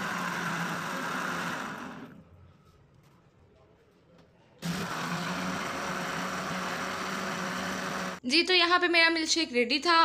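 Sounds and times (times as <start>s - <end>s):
electric blender running: 0.0s - 2.2s, 4.6s - 8.2s.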